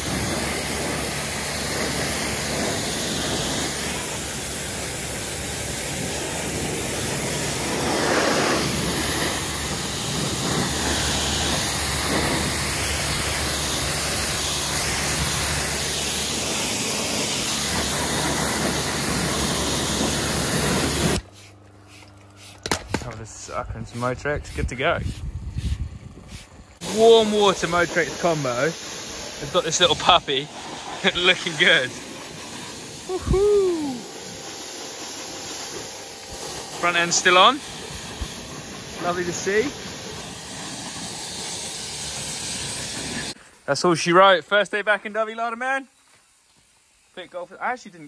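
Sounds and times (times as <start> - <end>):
pump motor humming: 0.0 - 43.4
pressure washer spray hissing: 0.0 - 48.0.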